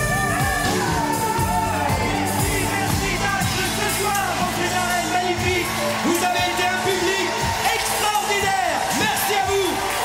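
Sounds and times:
voices singing: 0.0 - 4.2
live pop band playing: 0.0 - 10.0.

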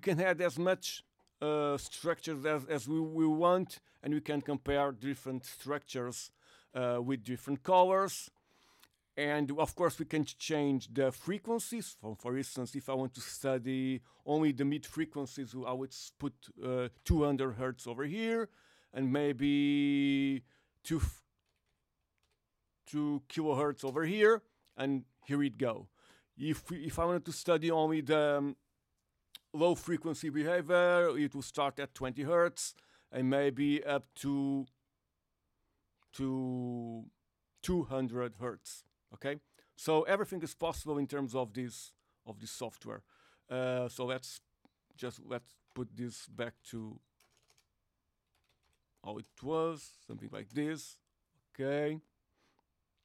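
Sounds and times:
faint keyboard keystrokes: 47.1 - 49.5.

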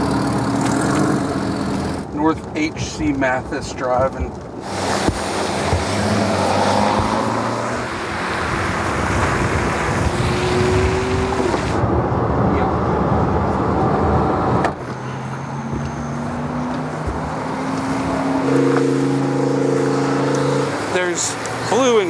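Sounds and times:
car engines running: 0.0 - 22.0
tyres hissing on wet pavement: 4.6 - 7.4.

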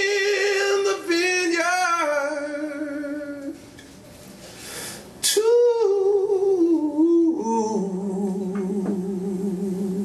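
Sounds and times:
man singing a long note: 5.2 - 10.0.

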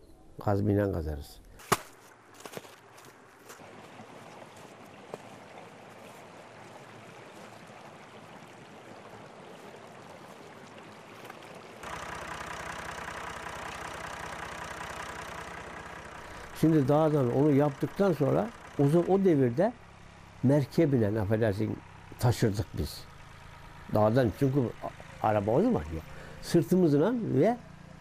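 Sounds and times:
tractor engine running: 11.8 - 28.0.

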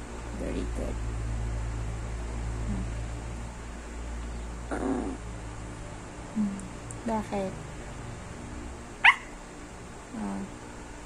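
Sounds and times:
small dog yipping: 9.0 - 9.4.

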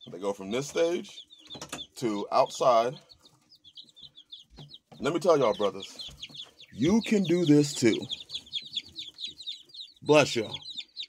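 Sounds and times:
chicks peeping: 0.0 - 11.0.

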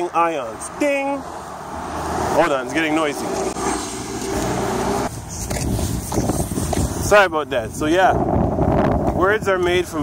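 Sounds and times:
passing vehicles rumble: 0.0 - 10.0.

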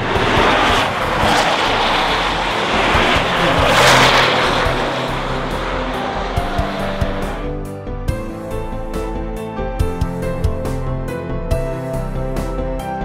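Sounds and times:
car passing at speed: 0.0 - 7.7.

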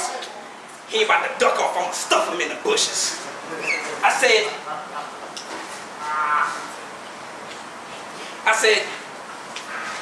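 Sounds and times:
low room murmur: 0.0 - 10.0.

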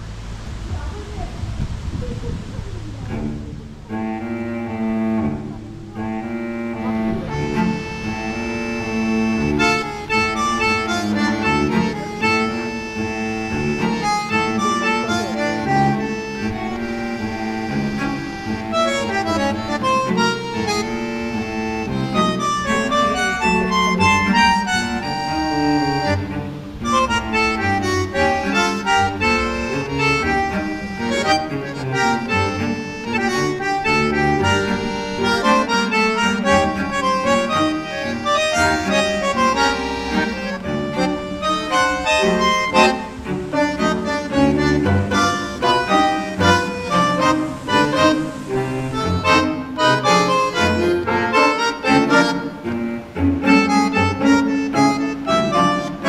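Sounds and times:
instrumental background music: 3.9 - 56.0.

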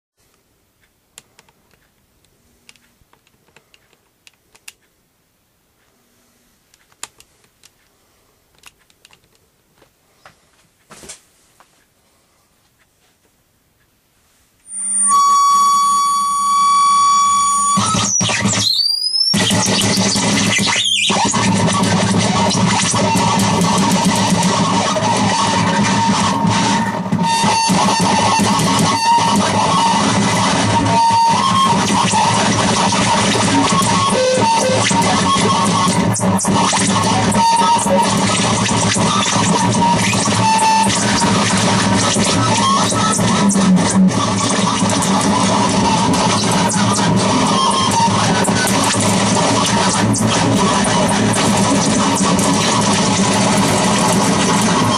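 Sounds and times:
high tone with overtones: 14.6 - 54.9
loud wall of distorted noise: 14.6 - 54.9.

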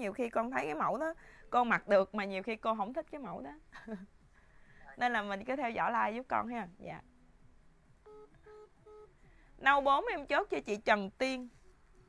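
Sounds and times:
short electronic beeps: 8.0 - 9.1.

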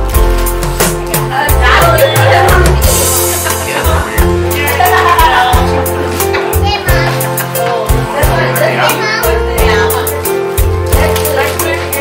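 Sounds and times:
music with drum beat and bass: 0.0 - 8.6
children's voices and chatter: 1.1 - 12.0.

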